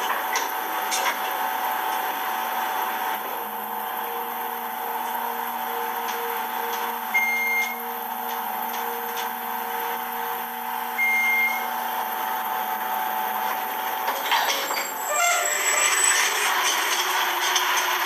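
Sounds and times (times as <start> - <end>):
elevator drive hum: 0.0 - 18.0
short high beeps: 7.2 - 7.8, 11.0 - 11.7.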